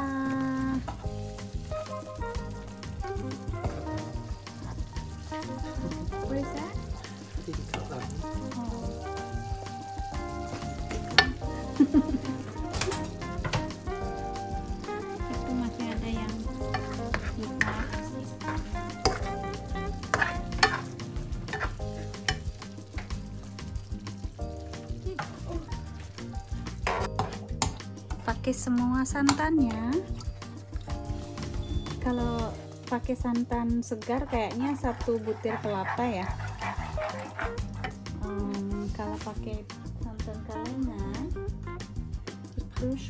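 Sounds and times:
background music: 0.0 - 43.0
curry simmering and sizzling: 0.0 - 43.0
spoon clicking and scraping pan: 10.5 - 13.7, 15.3 - 23.9, 26.0 - 28.4, 29.1 - 32.7, 34.1 - 38.2.

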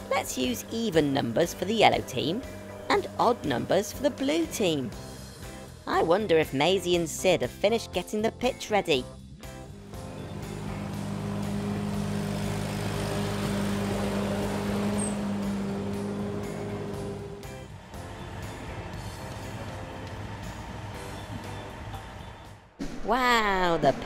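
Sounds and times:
ride-on lawn mower engine: 0.0 - 5.6, 9.7 - 22.5.

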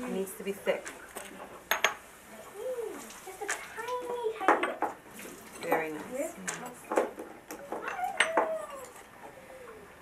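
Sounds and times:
brushes and plastic cups clinking: 3.0 - 9.1.

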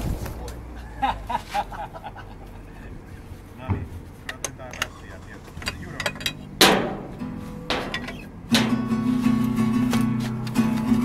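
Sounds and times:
soft plucked guitar notes: 5.6 - 11.0.

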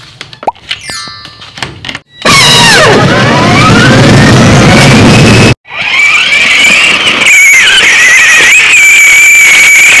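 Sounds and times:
toy car electric motor whining: 5.7 - 8.7.

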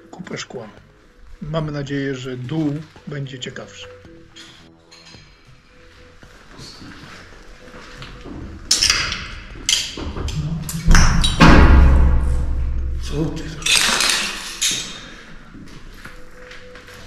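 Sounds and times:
background music: 0.0 - 17.0
deep low boom: 10.3 - 13.6
sharp hits: 10.4 - 15.0.

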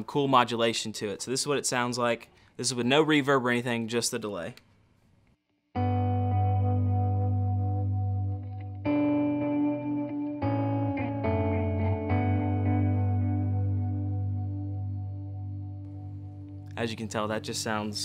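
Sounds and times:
electric guitar chords with delay: 5.8 - 18.0.

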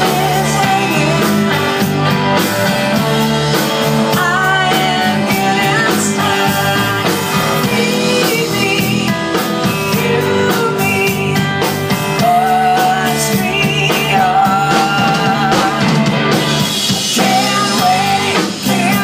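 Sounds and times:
live rock music: 0.0 - 19.0.

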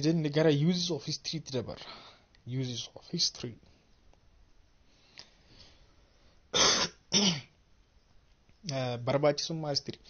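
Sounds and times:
man clearing his throat: 6.6 - 7.5.

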